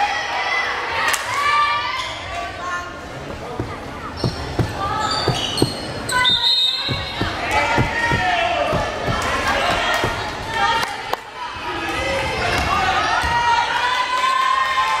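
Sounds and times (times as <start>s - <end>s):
volleyball bouncing on gym floor: 3.3s - 10.6s.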